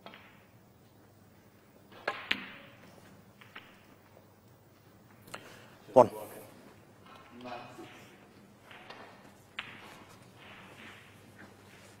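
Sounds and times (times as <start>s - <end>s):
snooker balls clicking: 0.0s - 5.5s, 6.8s - 12.0s.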